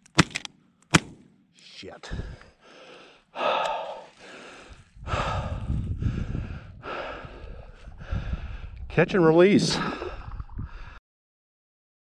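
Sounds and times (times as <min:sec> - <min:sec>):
person breathing heavily: 0:02.0 - 0:08.9, 0:09.7 - 0:11.0
low rumble on microphone: 0:04.8 - 0:11.0.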